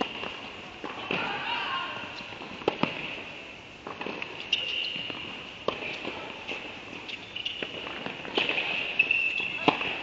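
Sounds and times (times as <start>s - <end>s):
tennis ball impacts: 0.0s - 10.0s.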